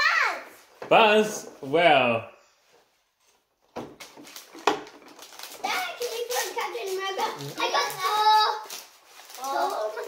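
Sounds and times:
plastic toys and foil bags handled: 3.2s - 10.0s.

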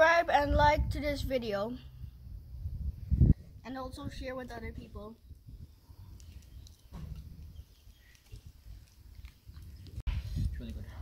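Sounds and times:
person chewing and lip smacking: 6.2s - 10.0s.

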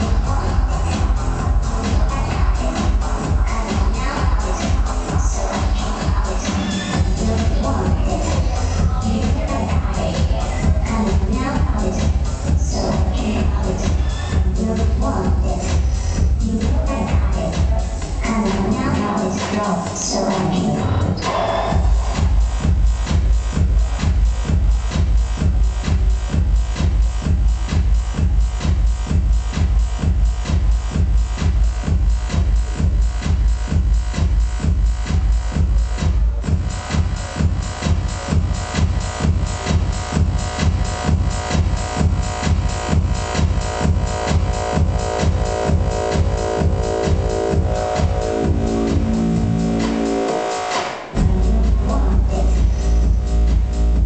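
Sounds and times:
electronic dance music: 0.0s - 54.0s
steady kick drum: 0.0s - 54.0s.

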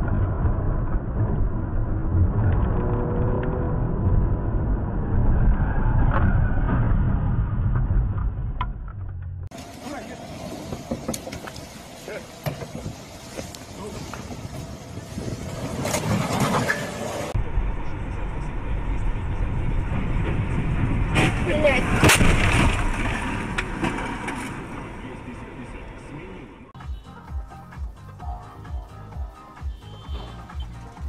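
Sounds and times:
car and road noise: 0.0s - 31.0s
people talking: 9.8s - 10.3s, 12.0s - 12.4s, 13.7s - 14.3s, 21.4s - 22.2s, 24.9s - 26.7s.

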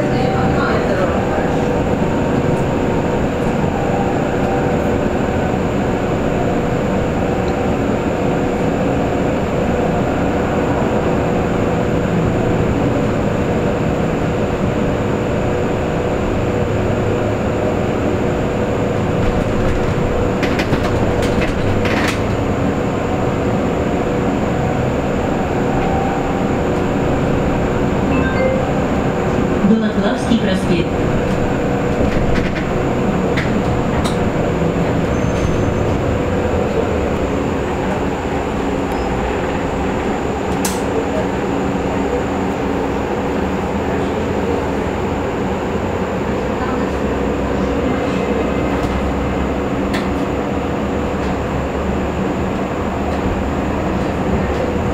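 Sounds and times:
road and tyre rumble: 0.0s - 54.9s.

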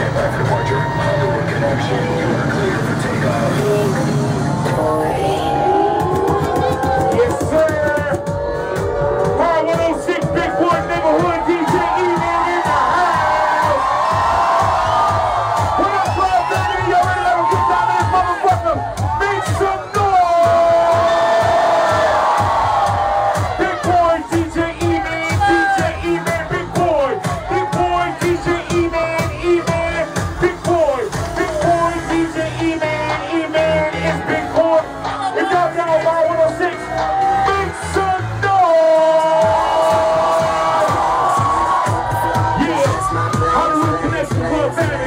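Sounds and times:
crowd noise: 0.0s - 45.0s
loud live dance music: 0.0s - 45.0s
low thudding beat: 0.0s - 45.0s.

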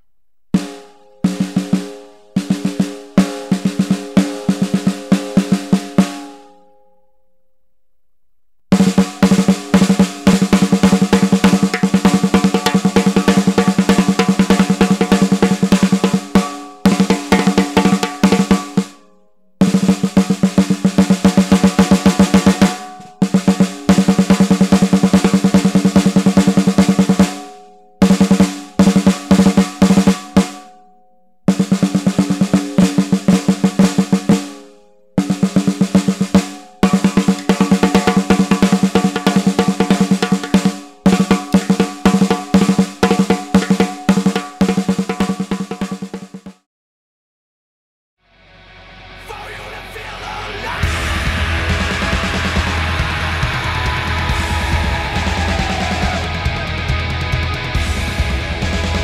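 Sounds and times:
snare drum strokes and rolls: 0.6s - 6.3s, 8.7s - 19.0s, 19.6s - 30.7s, 31.5s - 46.7s, 50.8s - 59.0s.

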